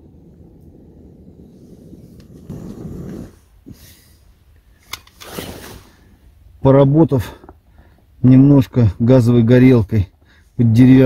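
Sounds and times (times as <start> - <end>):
gas torch rushing: 0.0 - 6.2.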